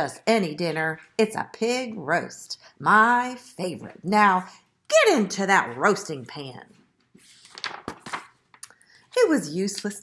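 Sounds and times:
paper page turning: 7.0 - 9.3.

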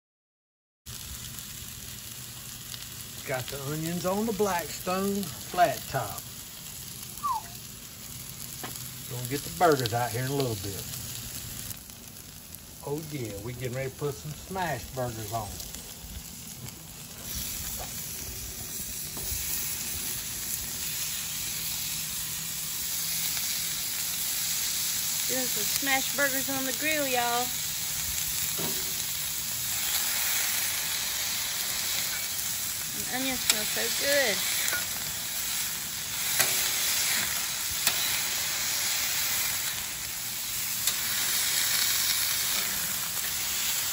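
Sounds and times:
food sizzling on a griddle: 0.9 - 43.9
short falling chirp: 7.2 - 7.6.

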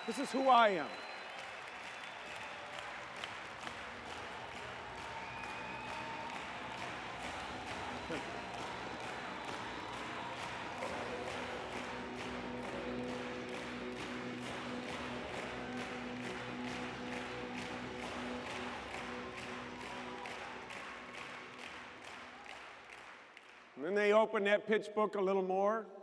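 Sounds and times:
large audience applauding: 0.0 - 23.8
music with steady beat: 4.1 - 21.5.

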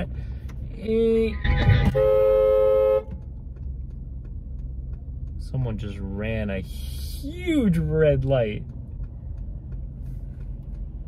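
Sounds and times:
road noise: 0.0 - 11.0
car horn blast: 1.4 - 3.2.

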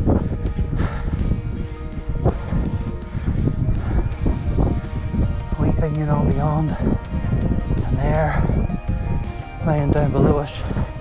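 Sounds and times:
background music with held notes: 0.0 - 11.0
low rumbling noise: 0.0 - 11.0.

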